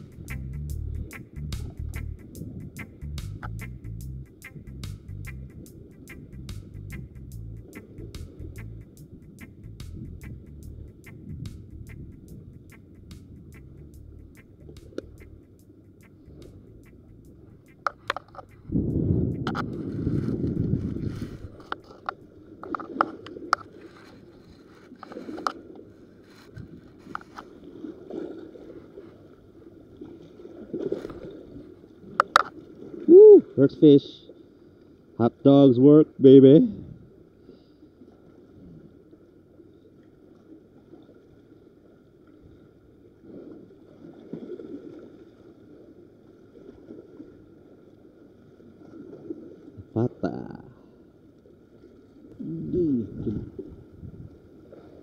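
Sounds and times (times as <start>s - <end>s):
low rumbling handling noise: 0.0s - 25.0s
sea water lapping: 7.6s - 35.2s, 36.0s - 55.0s
microphone handling clicks and knocks: 17.7s - 24.2s.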